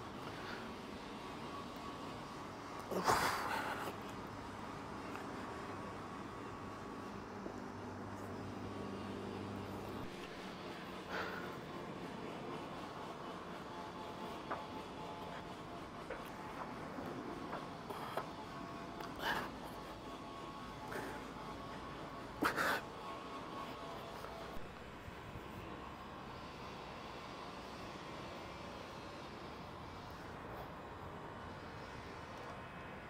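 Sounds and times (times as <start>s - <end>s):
outdoor rumble and hiss: 0.0s - 33.0s.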